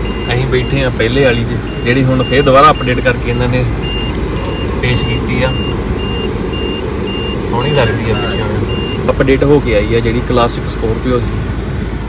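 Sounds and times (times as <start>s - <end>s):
dashboard warning chime beeping: 0.0s - 9.8s
road and engine rumble: 0.0s - 12.0s.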